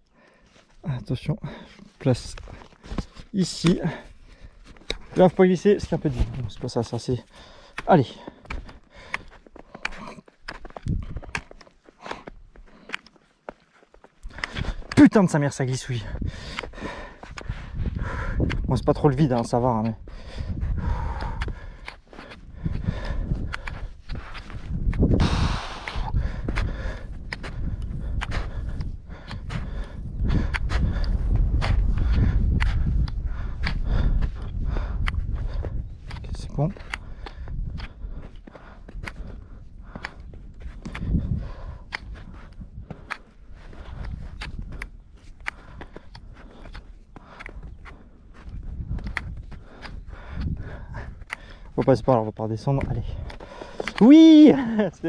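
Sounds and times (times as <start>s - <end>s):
trekking poles striking snow: 1.7s - 55.0s.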